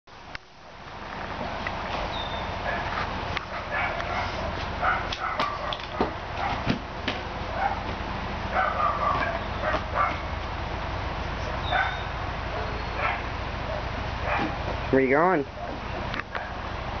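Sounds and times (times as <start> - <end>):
puppy yips and whimpers: 8.6 - 10.2, 11.6 - 13.3.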